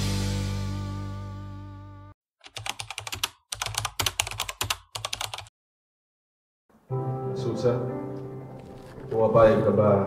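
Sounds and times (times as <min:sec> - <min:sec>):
rapid keyboard typing clicks: 0:02.4 - 0:05.5.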